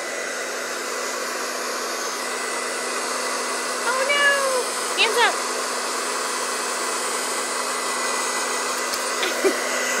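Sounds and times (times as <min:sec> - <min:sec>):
hair dryer blowing: 0:00.0 - 0:10.0.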